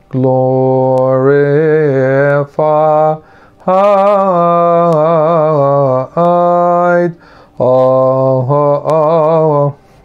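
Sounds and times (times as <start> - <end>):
man chanting a hymn: 0.1 - 9.8.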